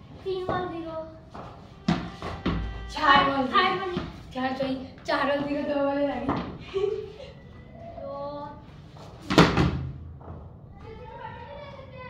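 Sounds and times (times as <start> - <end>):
tennis ball bouncing on tiles: 1.9 - 4.2, 6.2 - 6.6.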